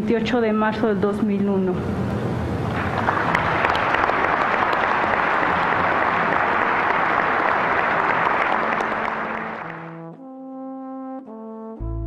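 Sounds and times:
large audience applauding: 2.6 - 10.1.

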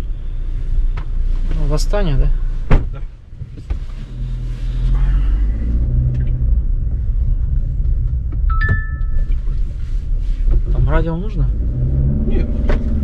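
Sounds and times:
car engine and road rumble: 0.0 - 13.0
short electronic chime: 8.5 - 9.3.

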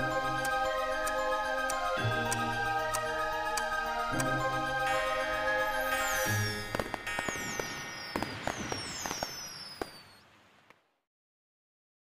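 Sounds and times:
falling firework whistles: 5.9 - 10.7
firework crackling pops: 6.3 - 10.8.

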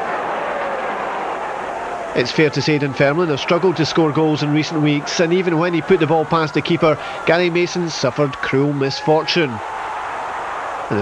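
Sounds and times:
football crowd noise: 0.0 - 11.0.

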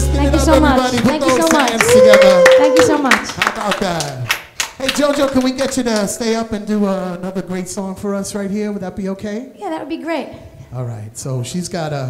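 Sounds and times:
person talking: 0.0 - 3.1.

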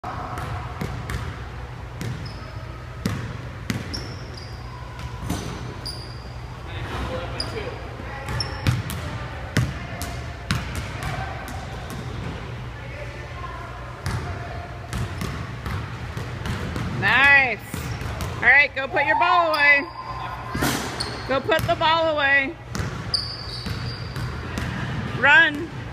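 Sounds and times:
sneakers squeaking on floor: 2.0 - 6.5, 7.3 - 9.0, 19.0 - 21.8, 22.8 - 24.5
low hum: 18.9 - 21.3
basketball bouncing on wooden floor: 22.7 - 24.7.

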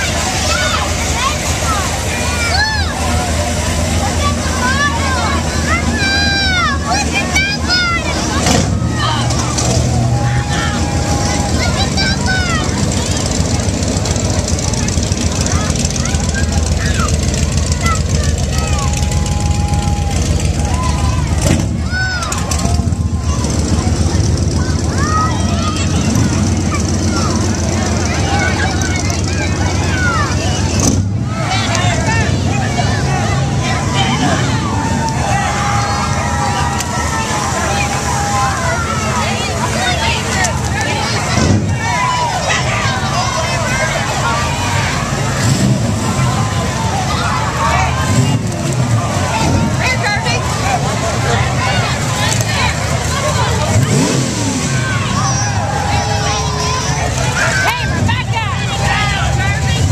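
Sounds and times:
car engines rumbling: 0.0 - 59.9
crowd voices and calls: 0.0 - 59.9.

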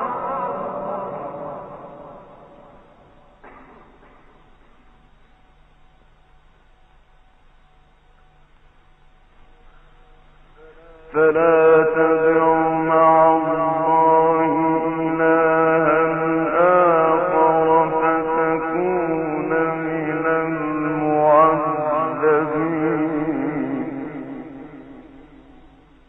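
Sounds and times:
man chanting recitation: 10.6 - 25.6.

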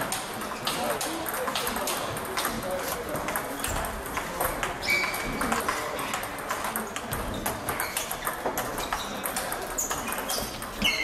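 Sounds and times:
table tennis balls clicking: 0.0 - 11.0.

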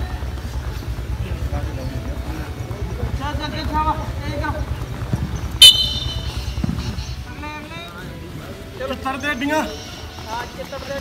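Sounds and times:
sports whistle blast: 5.6 - 7.0.

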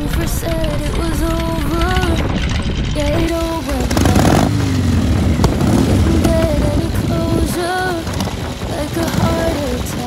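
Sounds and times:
background music: 0.0 - 10.0
motorcycle engine revving: 0.0 - 10.0.

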